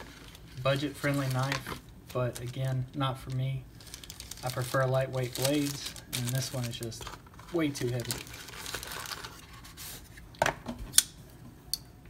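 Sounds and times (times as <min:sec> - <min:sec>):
cardboard box and paper rustling: 0:00.0 - 0:02.8, 0:03.8 - 0:10.1.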